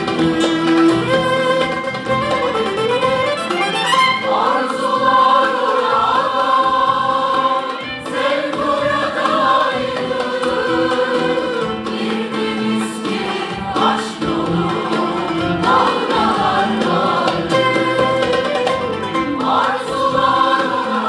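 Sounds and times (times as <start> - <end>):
mixed choir singing: 0.0 - 2.2, 3.5 - 21.0
clarinet: 0.0 - 4.6, 17.4 - 19.5
frame drum: 0.0 - 21.0
plucked and bowed strings: 0.0 - 21.0.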